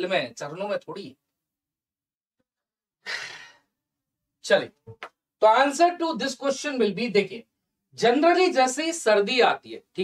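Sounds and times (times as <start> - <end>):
man speaking: 0.0 - 1.2, 4.4 - 4.8, 5.4 - 10.0.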